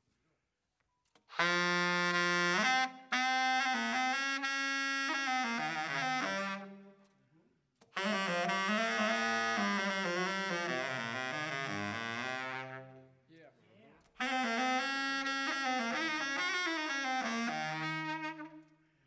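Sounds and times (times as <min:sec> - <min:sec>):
saxophone solo: 0:01.3 - 0:07.2, 0:07.9 - 0:13.3, 0:14.1 - 0:18.9.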